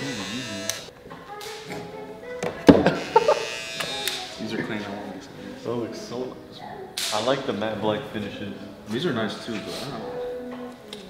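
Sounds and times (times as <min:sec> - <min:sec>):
hair clipper buzzing: 0:00.0 - 0:00.9, 0:02.9 - 0:04.4.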